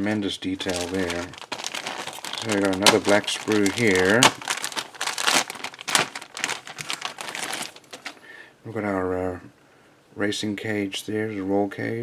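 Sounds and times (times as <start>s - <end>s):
plastic bag crinkling: 0.5s - 8.3s.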